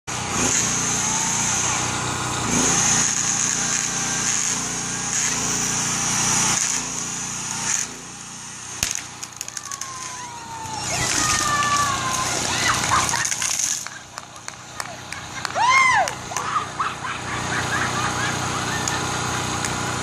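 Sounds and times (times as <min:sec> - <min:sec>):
electric chainsaw cutting wood: 0:00.1 - 0:20.0.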